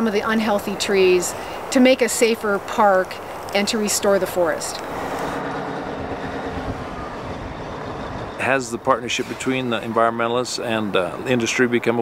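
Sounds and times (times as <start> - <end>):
heavy diesel machinery rumbling: 3.9 - 11.4.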